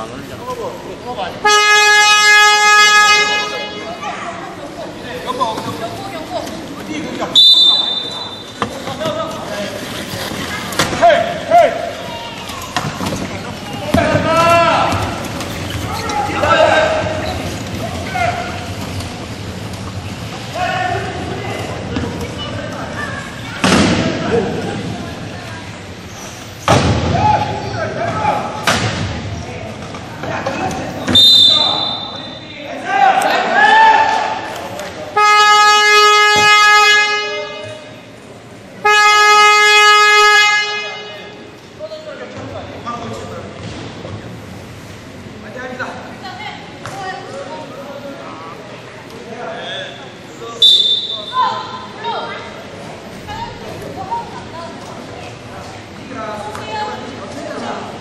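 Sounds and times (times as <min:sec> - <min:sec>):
short whistle: 0:07.4 - 0:08.5, 0:31.1 - 0:32.4, 0:50.6 - 0:51.4
shouting voices echoing: 0:13.7 - 0:18.8.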